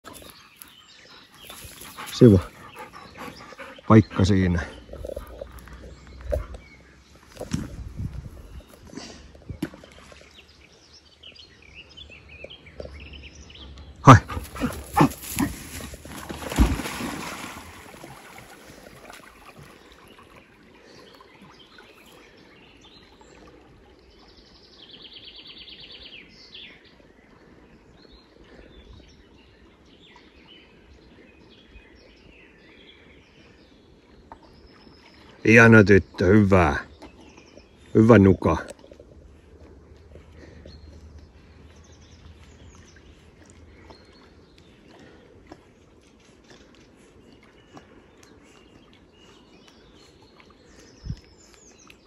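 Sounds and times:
dog splashing into river: 14.2 - 20.3.

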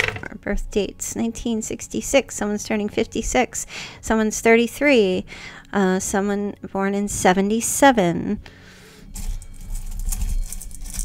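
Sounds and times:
crackling patter from handling: 9.2 - 11.0.

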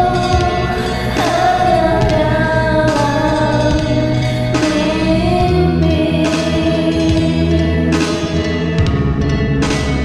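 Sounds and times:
woman singing long notes: 0.0 - 7.8
karaoke backing track: 0.0 - 10.0.

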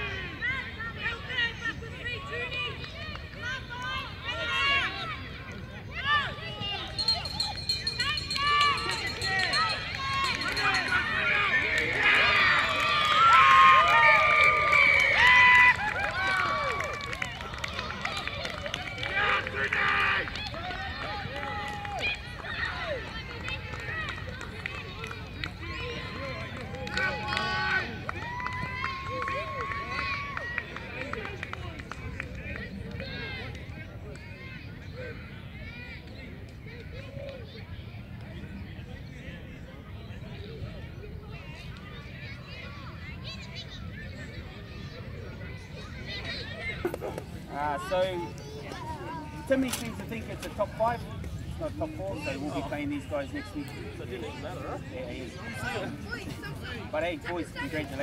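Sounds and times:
children and spectators shouting: 0.0 - 31.4.

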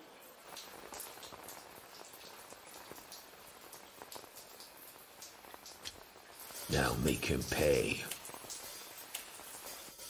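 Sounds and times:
falling water patter: 0.0 - 10.0
water drops ticking: 0.3 - 9.9.

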